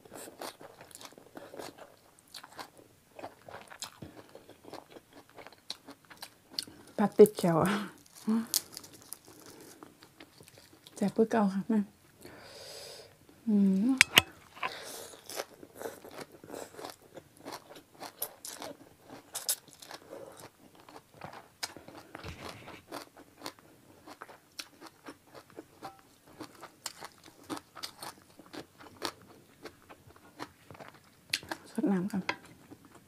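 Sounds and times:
chewing noodles: 0:00.0 - 0:07.0, 0:08.0 - 0:11.0, 0:14.5 - 0:33.0.

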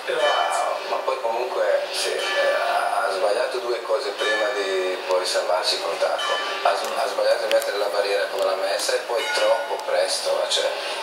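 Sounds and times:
men speaking through tv speaker: 0:00.0 - 0:11.0.

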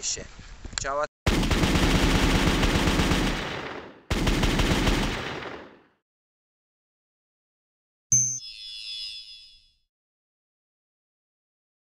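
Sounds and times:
high metallic ringing: 0:08.1 - 0:09.8.

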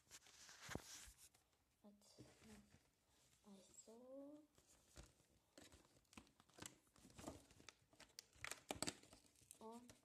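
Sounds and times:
packaging crinkling and tearing: 0:05.6 - 0:10.0.

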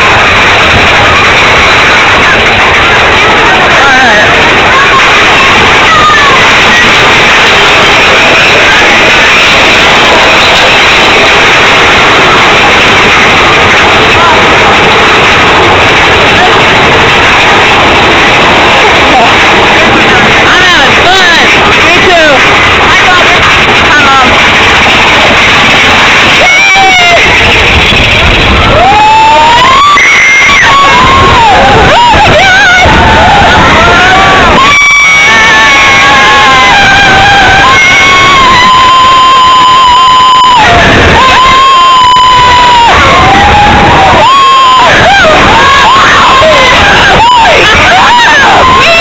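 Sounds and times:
riders screaming and whooping: 0:00.0 - 0:49.0
roller coaster wind and rumble: 0:00.0 - 0:49.0.

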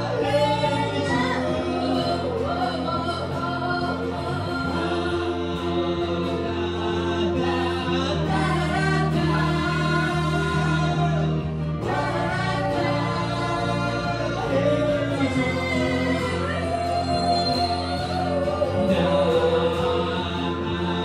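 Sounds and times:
electric bass: 0:00.0 - 0:21.0
electric guitar: 0:00.0 - 0:21.0
woman singing: 0:00.0 - 0:21.0.

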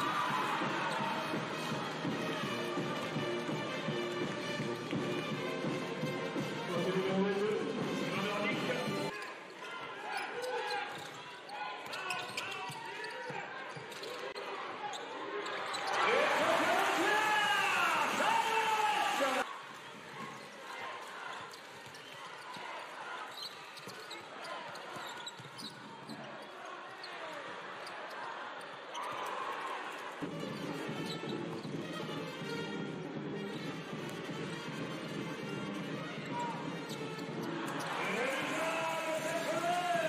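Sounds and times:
crowd cheering: 0:00.0 - 0:03.4, 0:14.6 - 0:23.4, 0:37.4 - 0:40.0
crowd voices: 0:33.4 - 0:40.0.

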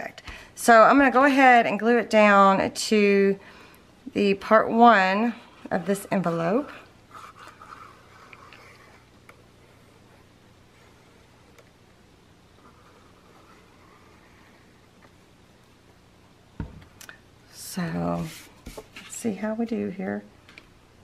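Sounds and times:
low steady hum: 0:00.0 - 0:21.0
glue bottle scratching on paper: 0:06.5 - 0:09.0.

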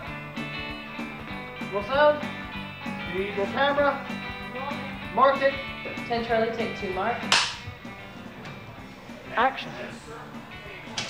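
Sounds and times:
faint music: 0:00.0 - 0:11.0
clapperboard snapping shut: 0:07.3 - 0:07.6.

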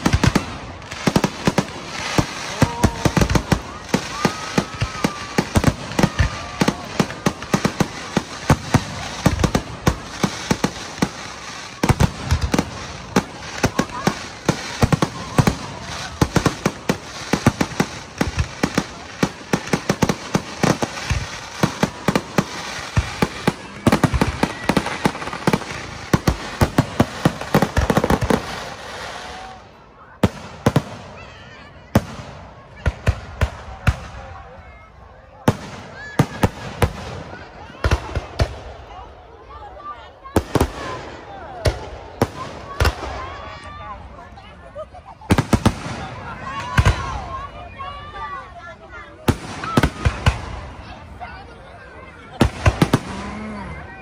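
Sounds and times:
fireworks bursting and crackling: 0:00.0 - 0:54.0.

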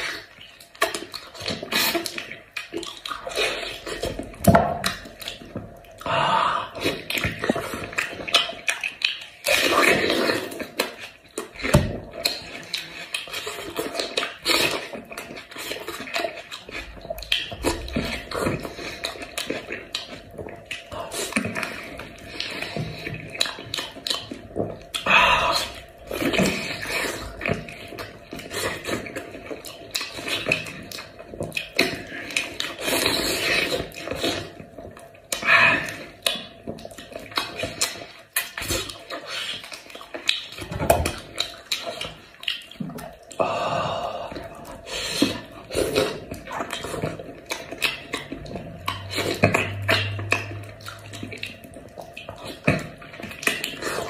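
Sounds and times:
wet chewing and lip smacking: 0:00.0 - 0:54.0.

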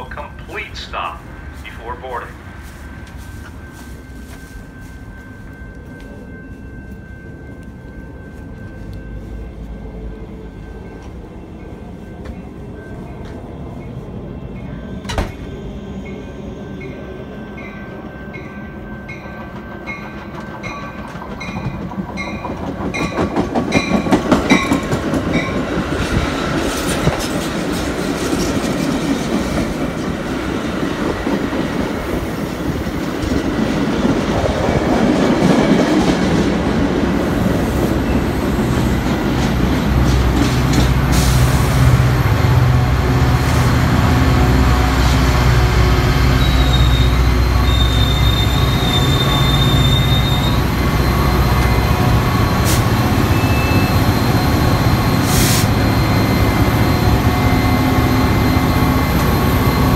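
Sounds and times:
diesel locomotive engine hum: 0:00.0 - 0:59.9
train bell dinging: 0:03.0 - 0:25.8, 0:37.2 - 0:43.4, 0:44.0 - 0:59.9
train wheels clattering: 0:19.2 - 0:41.8
high brake squeal: 0:46.3 - 0:58.8.

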